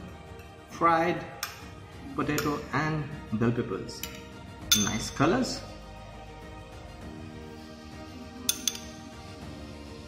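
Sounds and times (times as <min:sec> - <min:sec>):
background music: 0:00.0 - 0:10.0
metal spoon clinking on plate: 0:04.0 - 0:05.2, 0:08.5 - 0:09.0.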